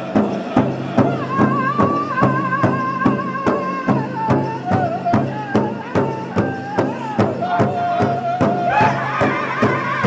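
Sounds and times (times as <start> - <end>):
large drum beating steadily: 0.0 - 10.0
men singing in high voices: 0.0 - 10.0.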